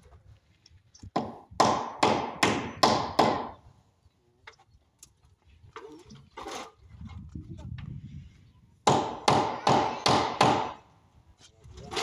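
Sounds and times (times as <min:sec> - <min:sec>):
hammer striking wooden frame: 0:01.1 - 0:03.6, 0:08.8 - 0:10.9.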